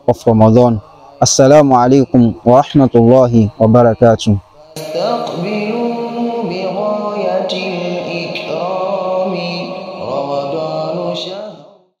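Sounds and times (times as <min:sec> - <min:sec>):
solo voice chanting: 0:00.0 - 0:12.0.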